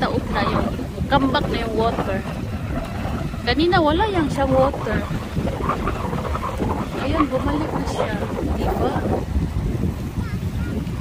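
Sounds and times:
person's voice: 0.0 - 2.2, 7.0 - 9.2
wind buffeting microphone: 0.0 - 11.0.

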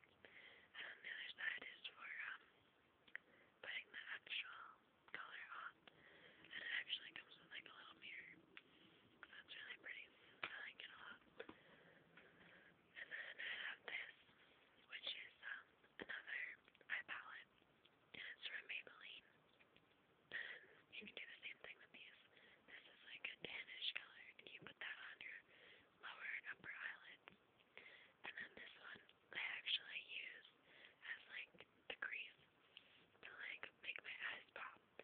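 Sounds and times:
person whispering: 0.7 - 2.5, 3.1 - 5.9, 6.5 - 8.4, 9.2 - 11.6, 12.9 - 17.5, 18.2 - 19.4, 20.3 - 27.3, 28.2 - 35.0.

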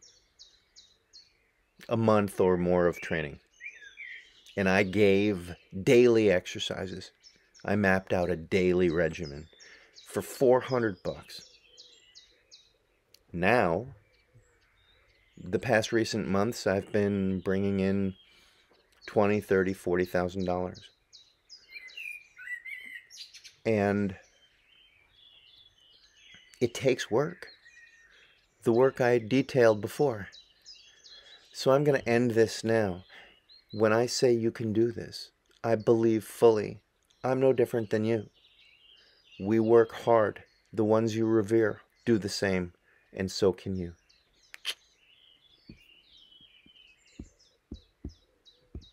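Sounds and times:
faint birds chirping: 0.0 - 48.9
soft low thumps: 45.6 - 48.9.

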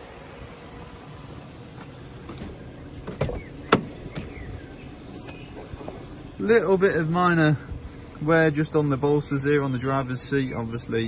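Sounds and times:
steady low rumble: 0.0 - 11.0
car door latch click: 2.3 - 4.4.

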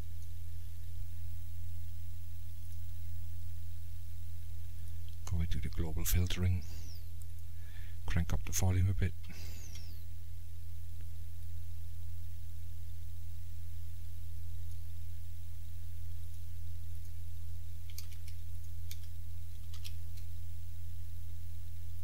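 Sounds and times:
low electrical hum: 0.0 - 22.0
computer mouse clicks: 17.8 - 20.4.

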